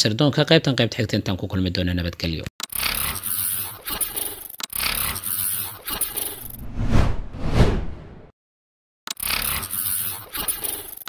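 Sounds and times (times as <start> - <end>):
whooshes: 6.4 - 8.3.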